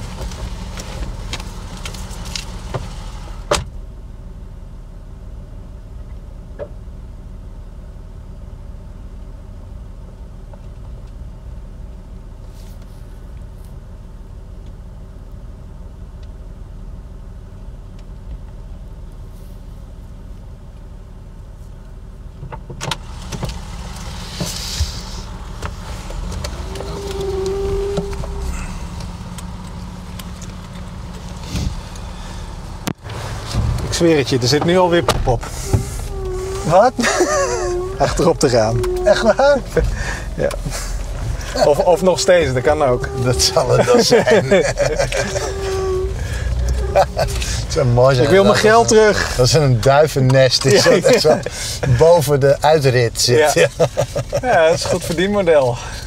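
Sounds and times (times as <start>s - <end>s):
car engine idling: 0.0s - 56.0s
car door shutting: 2.4s - 3.8s, 22.4s - 52.1s
knocks and rustling: 32.9s - 43.9s.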